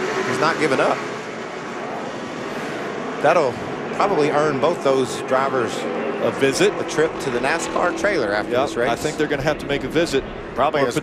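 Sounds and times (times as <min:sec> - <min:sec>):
race truck engines droning: 0:00.0 - 0:11.0.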